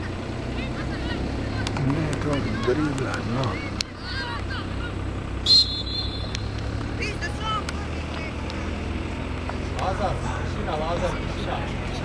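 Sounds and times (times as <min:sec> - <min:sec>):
distant players shouting: 0:00.0 - 0:12.0
referee's whistle: 0:05.4 - 0:06.4.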